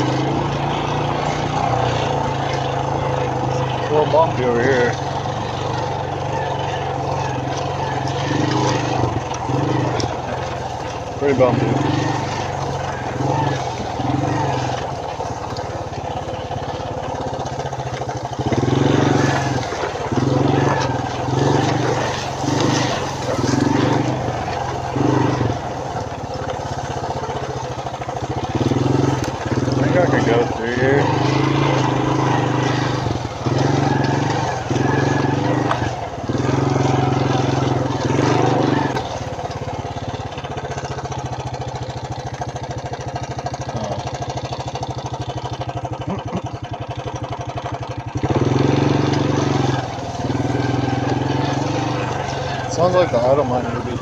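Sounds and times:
atv engine revving and idling: 0:00.0 - 0:54.0.

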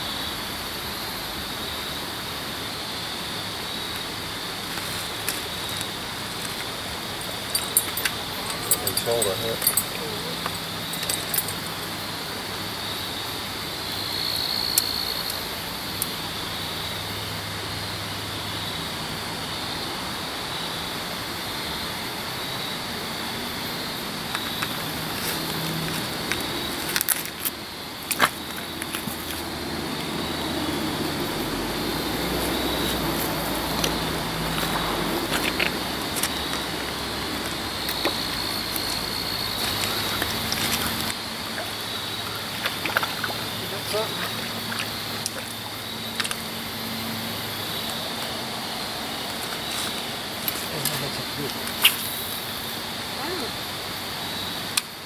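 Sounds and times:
flowing river water: 0:00.4 - 0:54.8
fishing gear clicks and rattles: 0:04.8 - 0:11.9, 0:37.9 - 0:41.2
thin high tone: 0:07.1 - 0:11.9.

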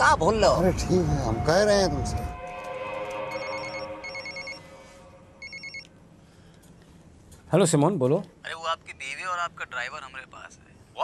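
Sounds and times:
sustained music chord: 0:01.4 - 0:05.4
telephone trilling ring: 0:03.3 - 0:04.7, 0:05.4 - 0:05.9.

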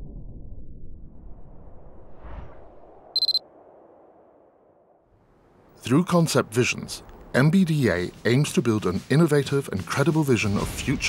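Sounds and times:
high electronic beep pulses: 0:03.2 - 0:03.4.

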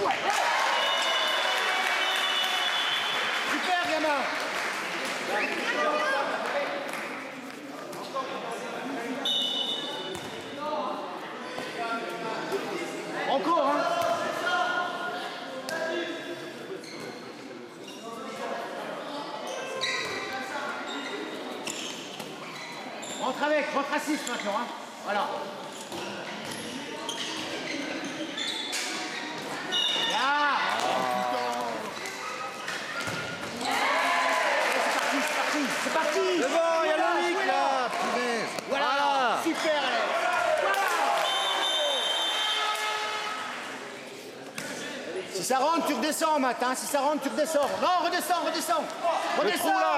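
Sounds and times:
players' voices: 0:00.0 - 0:49.9.

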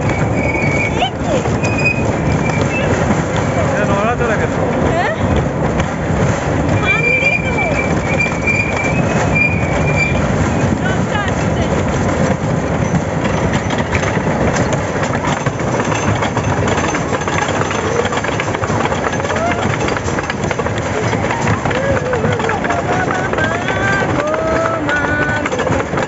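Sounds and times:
high squeal: 0:00.0 - 0:03.0, 0:06.8 - 0:10.4
roller coaster rattling on track: 0:00.0 - 0:26.0
riders' voices: 0:02.6 - 0:05.4, 0:20.8 - 0:26.0.

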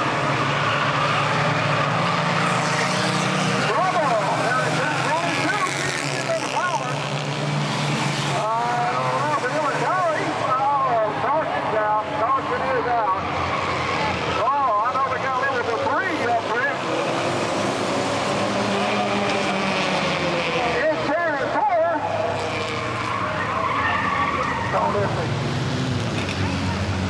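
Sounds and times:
race car engines droning: 0:00.0 - 0:27.0
tires squealing: 0:00.0 - 0:27.0.

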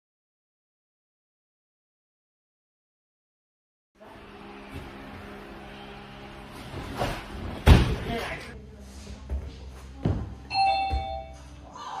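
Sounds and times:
thump: 0:07.6 - 0:08.1
two-note electronic chime: 0:10.5 - 0:11.5.

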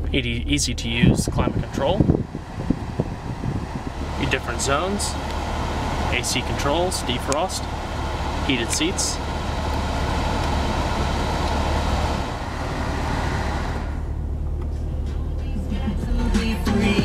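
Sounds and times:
car engine idling: 0:00.0 - 0:16.6
car stereo music: 0:00.2 - 0:17.0
air rushing from blower: 0:01.1 - 0:14.2.

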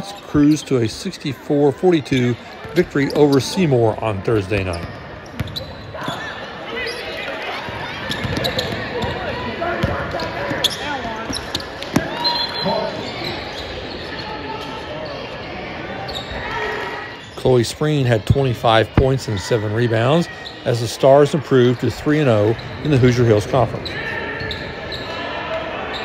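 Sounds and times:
shouting players and crowd voices: 0:00.0 - 0:26.0
basketball bouncing on hardwood floor: 0:08.1 - 0:09.2.

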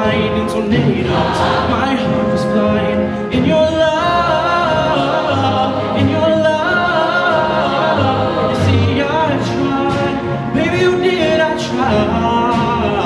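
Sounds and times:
choir singing: 0:00.8 - 0:02.8, 0:03.4 - 0:13.0.

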